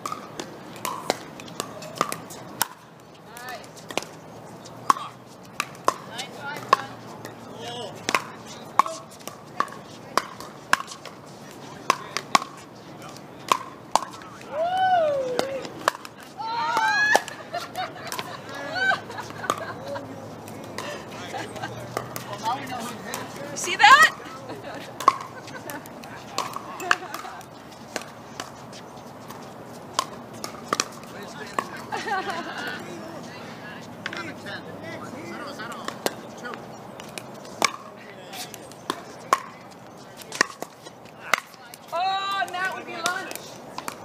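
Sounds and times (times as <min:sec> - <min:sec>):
ball bouncing on court: 0:00.0 - 0:04.2, 0:04.8 - 0:11.1, 0:11.8 - 0:14.2, 0:15.3 - 0:32.7, 0:35.7 - 0:44.0
paddles striking pickleball: 0:00.0 - 0:32.9, 0:33.5 - 0:44.0.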